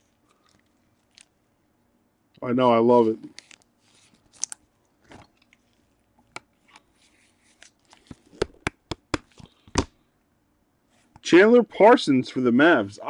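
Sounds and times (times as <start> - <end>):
trading cards and plastic sleeves crinkling: 0.0 - 1.4, 2.9 - 9.8.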